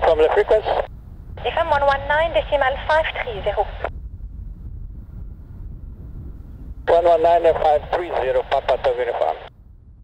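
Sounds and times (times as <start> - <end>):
distant turboprop plane rumble: 0.0 - 10.0
wind buffeting microphone: 0.0 - 10.0.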